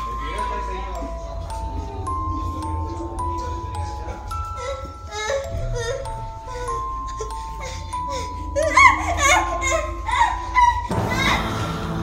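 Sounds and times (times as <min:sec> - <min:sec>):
dense sustained music: 0:00.0 - 0:12.0
child giggling: 0:04.1 - 0:11.7.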